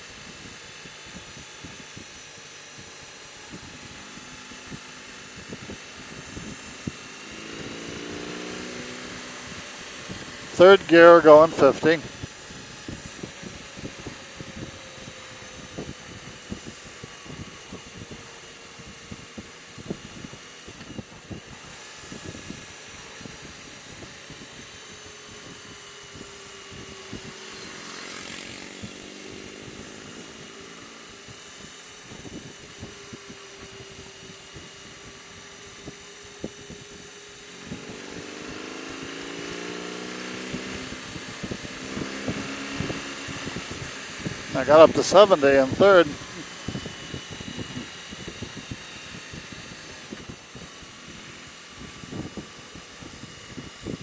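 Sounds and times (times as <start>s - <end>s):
motorcycle engine running: 0.0s - 54.0s
wind buffeting microphone: 4.7s - 10.5s, 11.9s - 30.5s, 40.5s - 54.0s.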